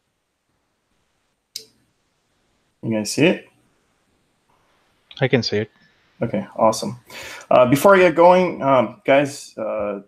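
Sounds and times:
man speaking: 0:02.8 - 0:03.5, 0:05.1 - 0:10.0.

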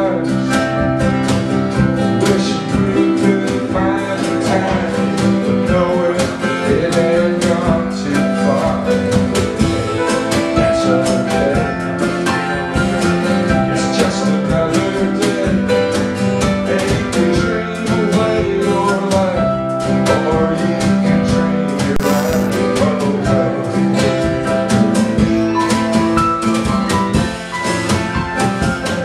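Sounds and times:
strummed acoustic guitar: 0:00.0 - 0:11.5
drum kit steady beat: 0:21.9 - 0:22.7
keyboard playing: 0:21.9 - 0:22.7.

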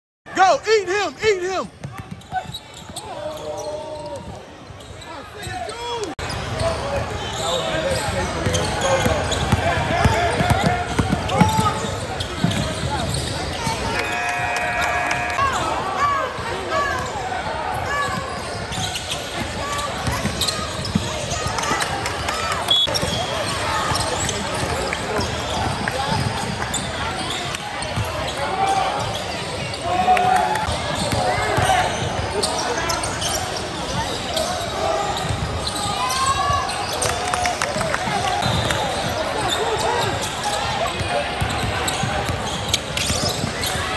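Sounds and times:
voices and shouts: 0:00.3 - 0:04.4, 0:12.8 - 0:24.1, 0:28.2 - 0:41.3
crowd noise: 0:00.3 - 0:43.9.

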